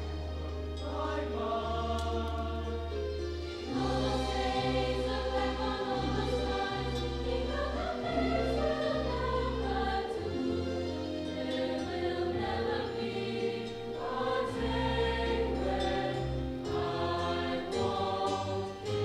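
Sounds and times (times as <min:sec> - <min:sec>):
instrumental accompaniment: 0:00.0 - 0:19.0
mixed choir singing: 0:00.0 - 0:19.0.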